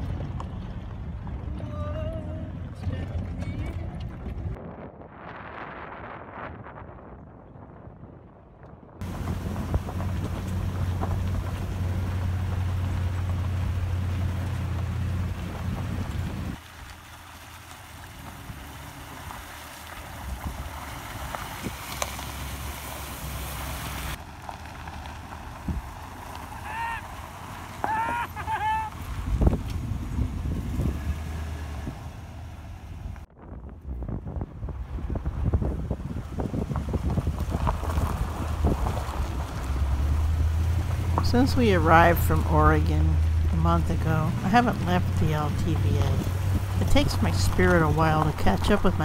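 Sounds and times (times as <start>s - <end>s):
wind noise on microphone: 0.0s - 12.2s, 20.0s - 22.0s, 25.5s - 26.1s, 29.0s - 49.0s
truck engine and road noise: 0.0s - 49.0s.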